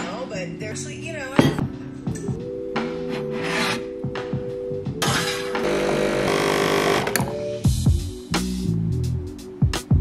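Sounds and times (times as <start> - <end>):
background music: 0.0 - 10.0
ceramic mug scraping shelf: 3.0 - 3.9
espresso machine buzzing: 5.6 - 7.3.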